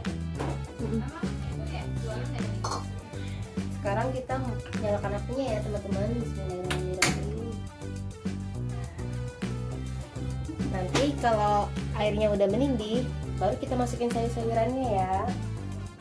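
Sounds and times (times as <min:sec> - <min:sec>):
guitar and bass music: 0:00.0 - 0:16.0.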